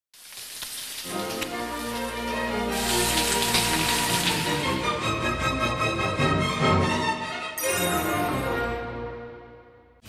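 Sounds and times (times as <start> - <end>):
steaks sizzling on grill pan: 0.2 - 4.6
background music: 1.0 - 10.0.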